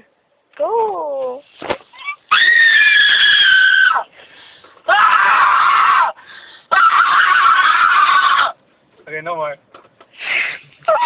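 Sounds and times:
loud high-pitched yells: 2.0s - 4.1s, 4.9s - 8.6s.

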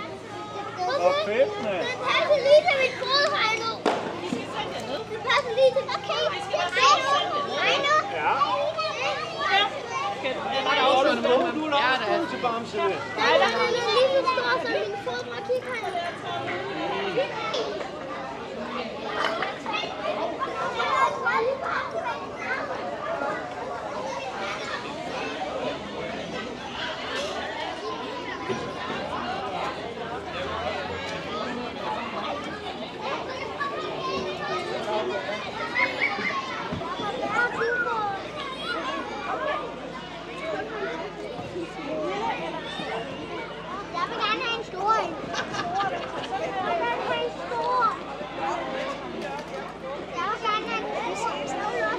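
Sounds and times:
children chattering and calling out: 0.0s - 51.9s.

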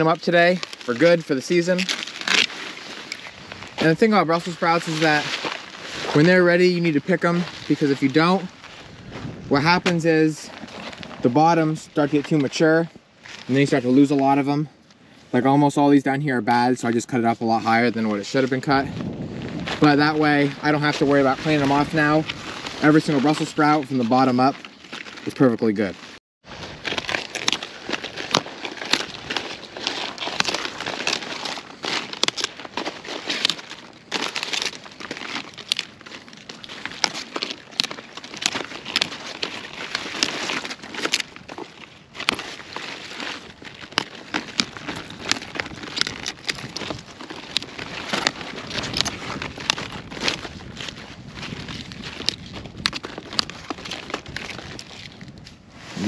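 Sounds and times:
leaves snapping off stalk: 0.0s - 3.9s, 26.8s - 55.2s
leaves rustling and crackling: 0.0s - 56.0s.

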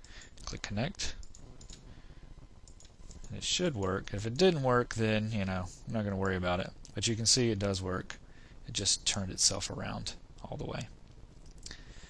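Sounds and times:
low room noise: 0.0s - 12.0s
computer mouse clicking: 1.2s - 1.9s, 2.6s - 3.3s.

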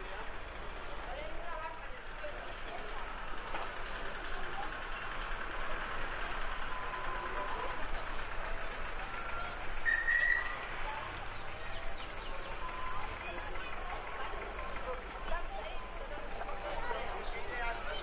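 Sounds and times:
distant crowd chatter: 0.0s - 18.0s.

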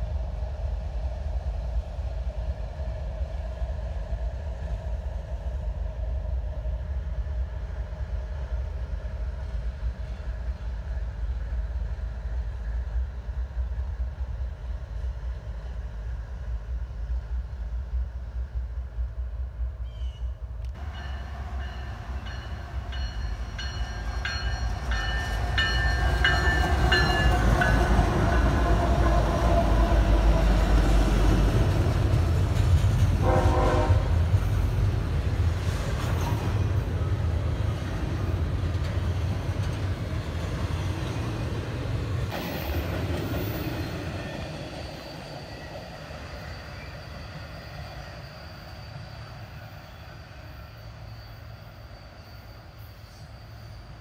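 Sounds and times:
diesel locomotives rumbling: 0.0s - 54.0s
train horn blasts: 33.1s - 34.4s.

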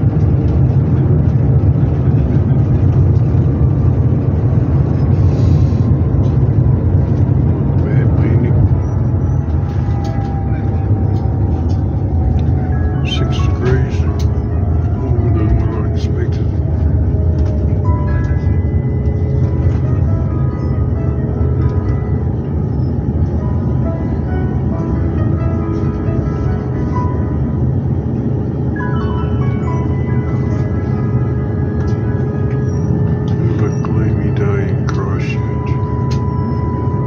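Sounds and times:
airliner cabin rumble: 0.0s - 37.0s
music playing: 5.8s - 37.0s.

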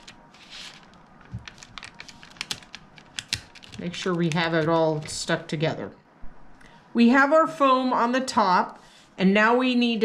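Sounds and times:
paper and foam rustling: 0.0s - 5.2s.

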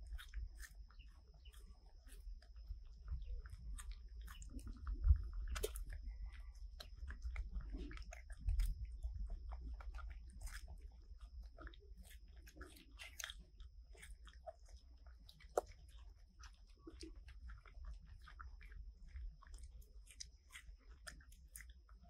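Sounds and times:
monkeys chewing: 0.0s - 22.0s.

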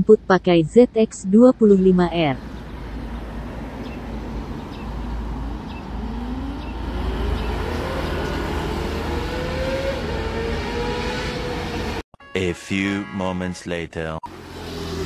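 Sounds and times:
distant motorcycle engine revving: 4.7s - 12.0s.

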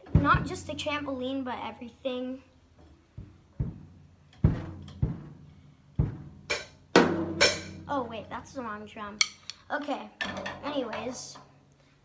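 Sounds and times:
drum strokes: 3.2s - 8.3s.

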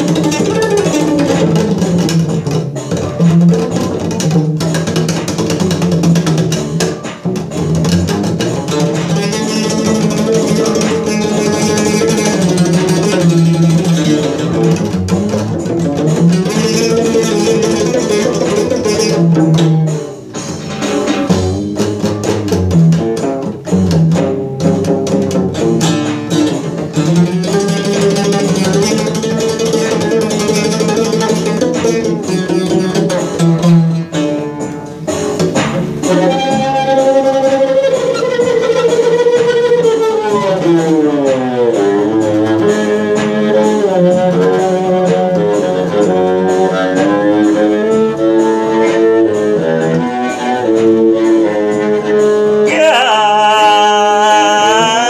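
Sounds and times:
bass string instrument improvising: 0.0s - 55.0s.

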